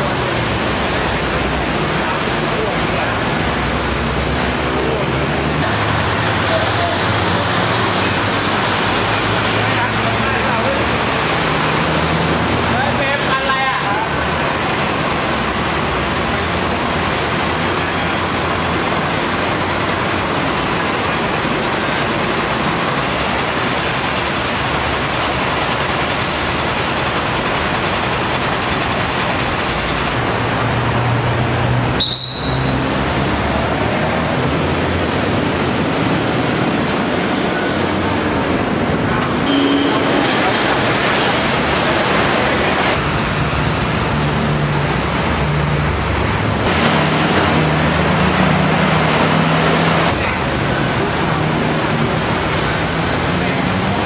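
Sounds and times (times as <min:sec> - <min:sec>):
road traffic hiss: 0:00.0 - 0:54.0
vehicle engines passing: 0:00.0 - 0:54.0.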